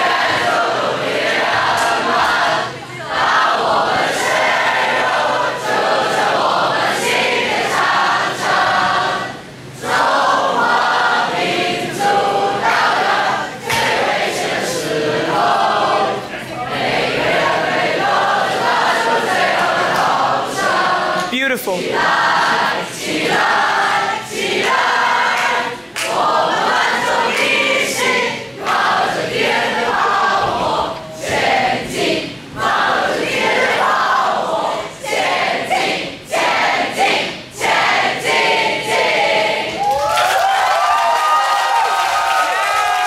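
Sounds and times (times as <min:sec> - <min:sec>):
group singing together: 0:00.0 - 0:40.1.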